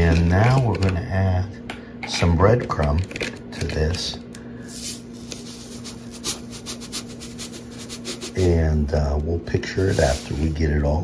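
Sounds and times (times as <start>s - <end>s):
steady low hum: 0.0s - 11.0s
breadcrumbs rustling: 4.6s - 8.5s.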